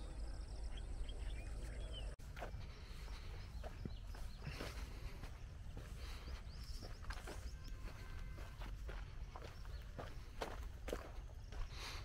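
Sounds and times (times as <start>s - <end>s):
footsteps on sandy dirt: 2.2s - 12.0s.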